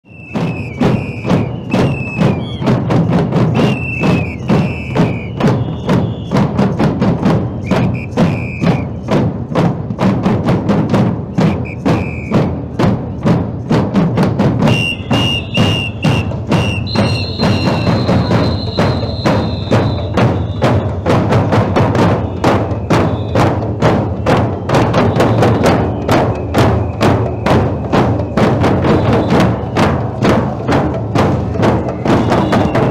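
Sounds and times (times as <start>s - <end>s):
marching drums beating: 0.1s - 32.9s.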